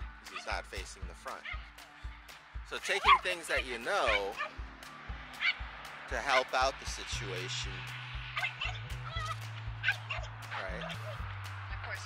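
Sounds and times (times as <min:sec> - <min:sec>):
dog whining and yipping: 0:04.0 - 0:04.5, 0:08.4 - 0:10.3.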